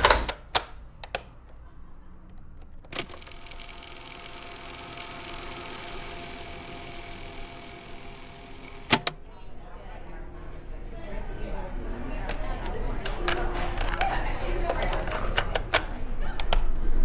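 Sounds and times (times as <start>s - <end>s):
cassette motor whirring: 3.0s - 9.2s
cassette recorder clicks: 8.8s - 9.2s.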